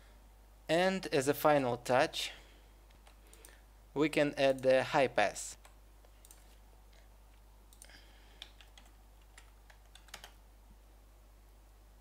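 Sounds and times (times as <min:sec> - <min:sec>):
low steady hum: 0:00.0 - 0:12.0
keyboard key presses: 0:07.7 - 0:10.4.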